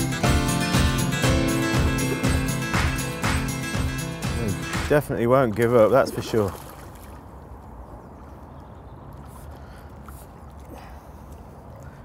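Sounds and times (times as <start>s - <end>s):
faint water splashing: 4.9s - 12.0s.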